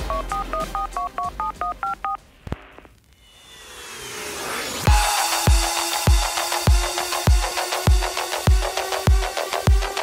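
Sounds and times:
touch-tone dialing beeps: 0:00.0 - 0:02.2
music: 0:00.0 - 0:02.8, 0:04.6 - 0:10.0.

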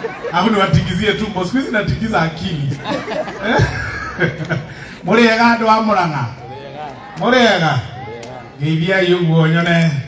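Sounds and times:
man talking into a microphone: 0:00.1 - 0:10.0
man chuckling: 0:02.7 - 0:04.7.

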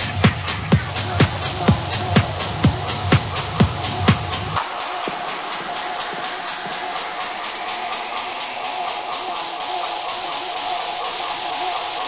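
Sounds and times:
hissing noise wash: 0:00.0 - 0:12.0.

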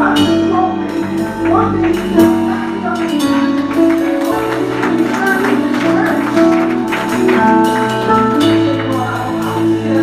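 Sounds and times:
bass line: 0:00.0 - 0:10.0
held keyboard chords: 0:00.0 - 0:10.0.

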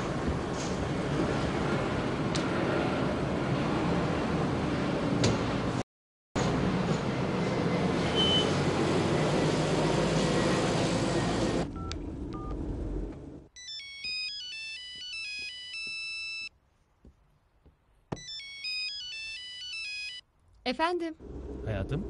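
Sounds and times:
mobile phone ringtone: 0:13.6 - 0:16.5, 0:18.2 - 0:20.2.

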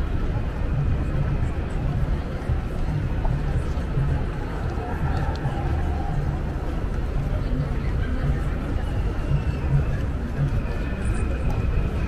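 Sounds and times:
indistinct voices of passers-by: 0:00.0 - 0:12.0
steady low rumble: 0:00.0 - 0:12.0.

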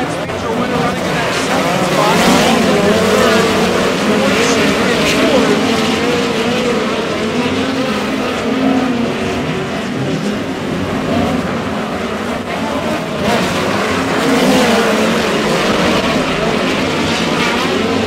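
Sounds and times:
race car engines revving: 0:00.0 - 0:18.0.

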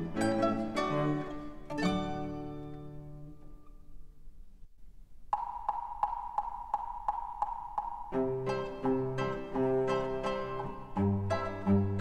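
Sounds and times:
high-pitched percussive taps: 0:05.3 - 0:09.4.

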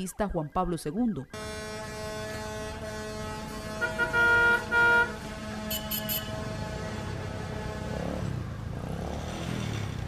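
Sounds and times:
vehicle horn honking: 0:01.4 - 0:07.8.

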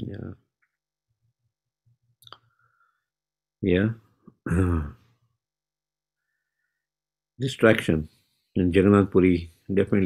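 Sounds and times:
man clearing throat: 0:04.4 - 0:05.0.

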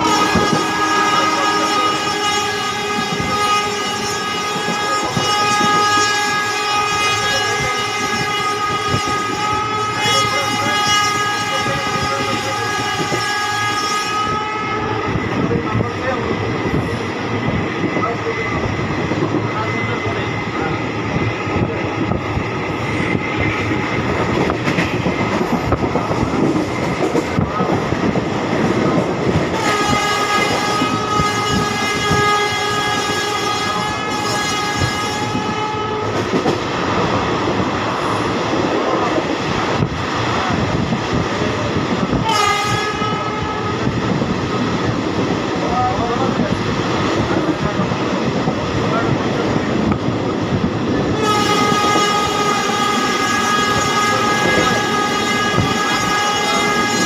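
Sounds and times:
train horn: 0:00.0 - 0:15.5, 0:29.3 - 0:36.6, 0:42.2 - 0:44.0, 0:51.1 - 0:57.0
train wheels rattling over rails: 0:00.0 - 0:57.0.

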